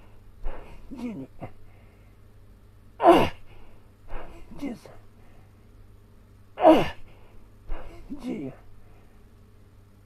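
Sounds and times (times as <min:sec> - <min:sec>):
man's strained exhalations: 0:00.4 - 0:02.0, 0:03.0 - 0:05.0, 0:06.6 - 0:09.0
man crying out: 0:07.7 - 0:08.6.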